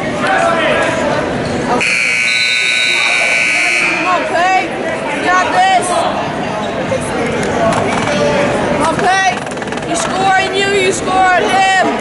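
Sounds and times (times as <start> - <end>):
scoreboard buzzer tone: 1.8 - 4.1.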